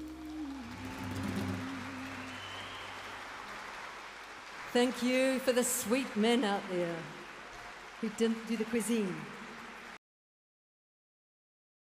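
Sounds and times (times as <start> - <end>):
audience applause: 0.0 - 10.0.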